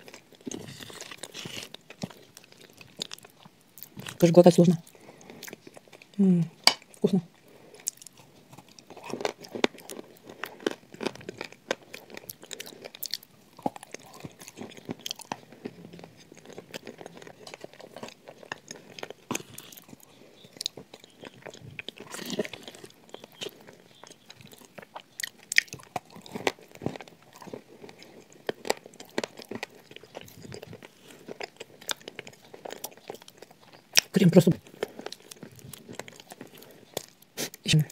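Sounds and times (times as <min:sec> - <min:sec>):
crunching and chewing biscuit: 0:00.0 - 0:37.9.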